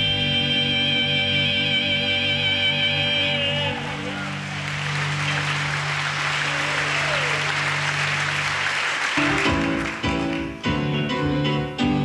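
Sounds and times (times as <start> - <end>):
audience applauding: 3.5 - 10.8.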